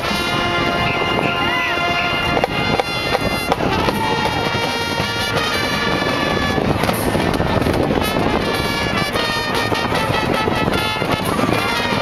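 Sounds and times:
brass sustained chords: 0:00.0 - 0:12.0.

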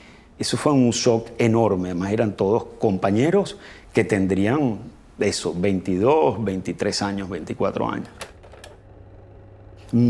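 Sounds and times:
faint steady hum: 0:00.0 - 0:10.0
man speaking: 0:00.4 - 0:08.2.

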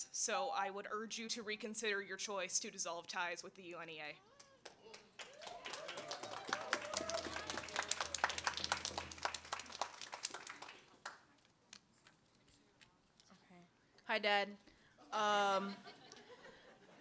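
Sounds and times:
audience applauding: 0:04.3 - 0:11.3.

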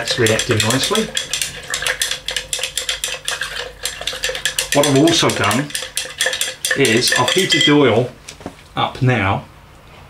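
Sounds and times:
chopstick stirring in glass jar: 0:00.0 - 0:08.2.

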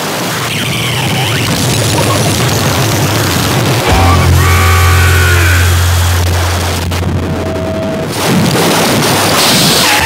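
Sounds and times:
wall of distorted noise: 0:00.0 - 0:10.0
steady deep hum: 0:01.0 - 0:08.8
pitched tones sliding downward: 0:01.4 - 0:08.2.

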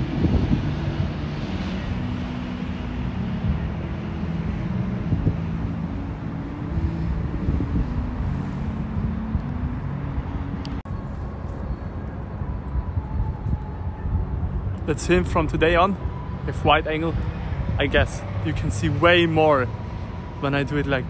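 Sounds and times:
city traffic rumble: 0:00.0 - 0:21.0.

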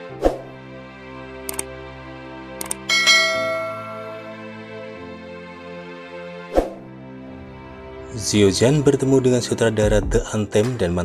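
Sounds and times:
background music: 0:00.0 - 0:11.0
bright bell ding: 0:02.9 - 0:04.5.

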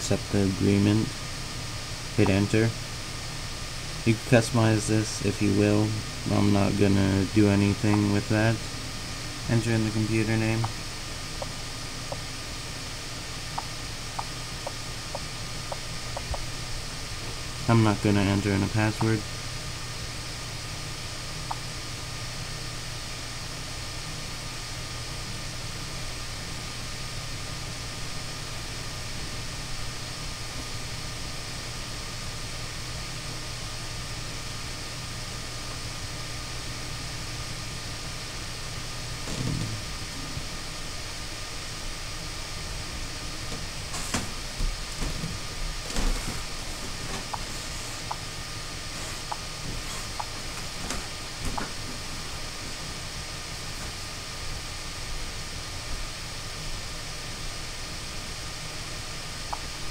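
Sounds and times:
low hum and hiss: 0:00.0 - 0:59.9.

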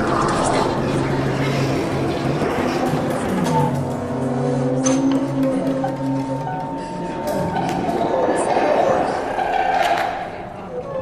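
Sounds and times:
low drone tones: 0:00.0 - 0:11.0.

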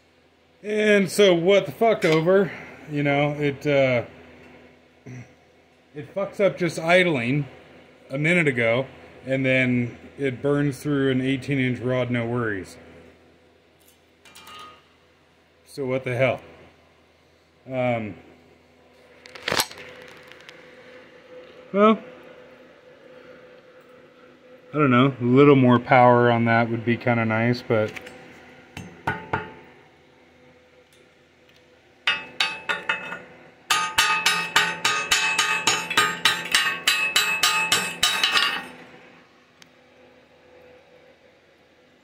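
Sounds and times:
faint steady hum: 0:00.0 - 0:42.0
hammer striking steel: 0:28.8 - 0:29.6, 0:32.1 - 0:38.8.

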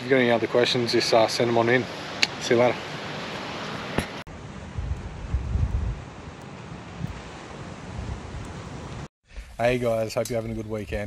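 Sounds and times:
surf washing on beach: 0:00.1 - 0:09.1
wind rushing: 0:01.6 - 0:09.8
wind buffeting microphone: 0:03.9 - 0:09.7.

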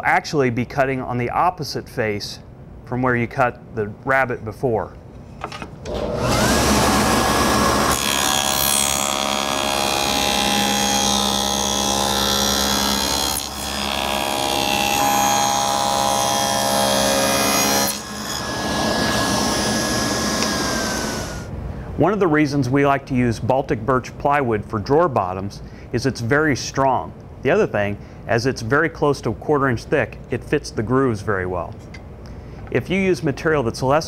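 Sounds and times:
saw blade spinning: 0:05.9 - 0:21.5
table saw cutting wood: 0:05.9 - 0:21.5.

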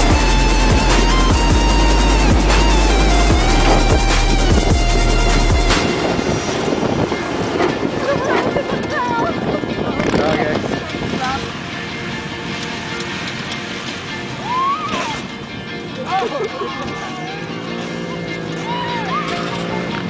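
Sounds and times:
electronic dance music: 0:00.0 - 0:06.2
car engine running: 0:00.0 - 0:08.3
wind buffeting: 0:00.0 - 0:16.0
people shouting: 0:14.4 - 0:15.2, 0:18.4 - 0:19.9.

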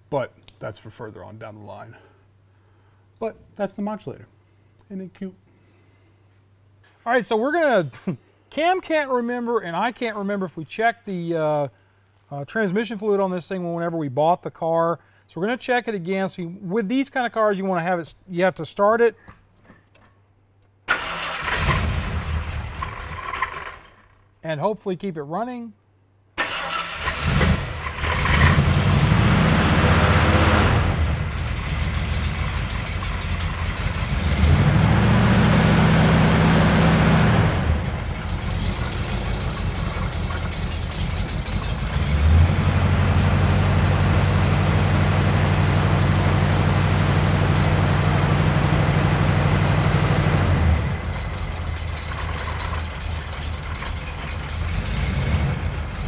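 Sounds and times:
car starter cranking: 0:20.9 - 0:24.0, 0:26.4 - 0:28.8, 0:38.0 - 0:42.3
car engine running: 0:27.4 - 0:56.0.

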